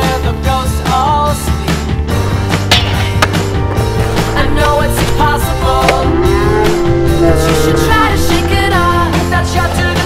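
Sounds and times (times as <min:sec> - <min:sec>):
rock music: 0:00.0 - 0:10.0.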